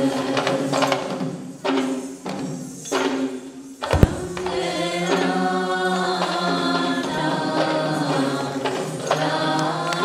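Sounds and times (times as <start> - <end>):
sharp percussion stroke: 4.0 - 4.9.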